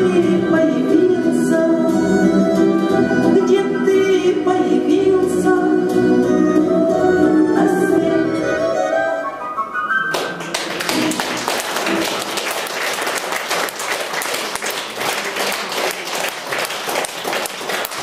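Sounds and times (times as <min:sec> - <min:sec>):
audience applause: 0:10.1 - 0:18.0.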